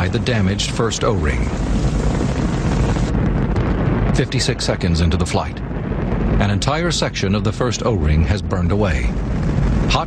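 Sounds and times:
rocket engines roaring: 0:00.0 - 0:10.0.

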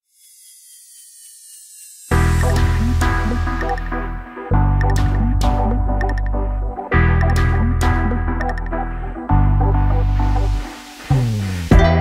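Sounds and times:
tones sliding downward: 0:00.0 - 0:12.0
loud background music: 0:02.1 - 0:12.0
high hiss: 0:10.0 - 0:11.8.

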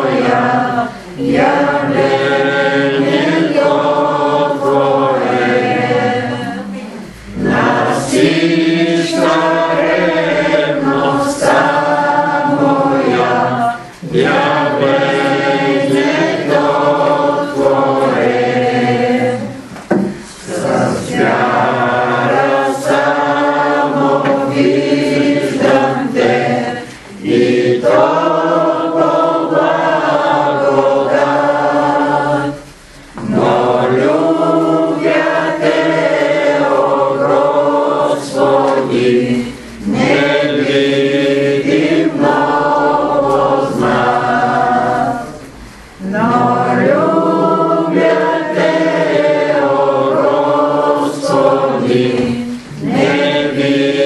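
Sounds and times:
congregation singing a hymn: 0:00.0 - 0:54.0.

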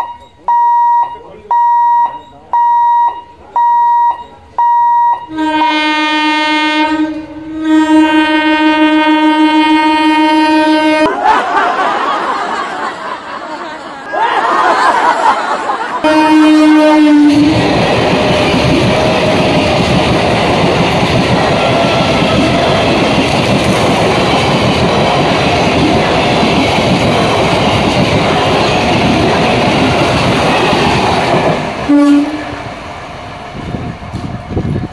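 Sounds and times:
train horn blast: 0:05.2 - 0:11.1, 0:16.0 - 0:20.0, 0:31.8 - 0:32.7
train wheels clattering on track: 0:17.3 - 0:34.9.

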